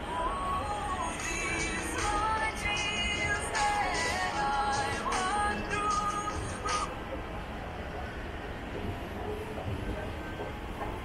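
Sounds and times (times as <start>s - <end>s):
escalator low rumble: 0.0s - 11.0s.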